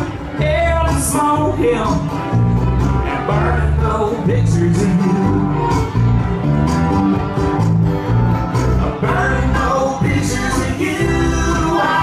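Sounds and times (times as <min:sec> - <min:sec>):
acoustic guitar strumming: 0:00.0 - 0:12.0
electric bass notes: 0:00.0 - 0:12.0.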